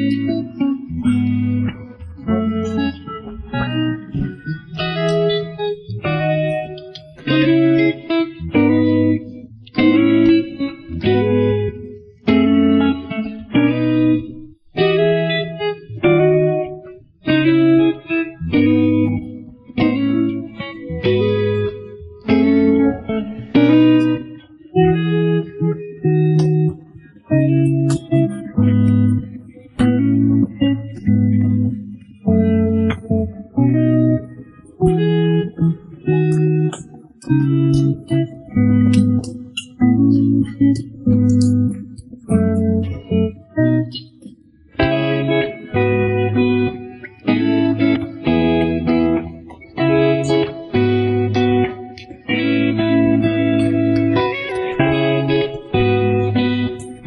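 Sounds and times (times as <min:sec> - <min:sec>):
guitar playing short chords: 0:00.0 - 0:57.0.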